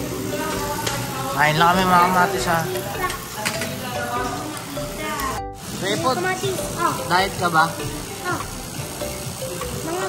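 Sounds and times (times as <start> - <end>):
meat sizzling on a grill: 0.0 - 10.0.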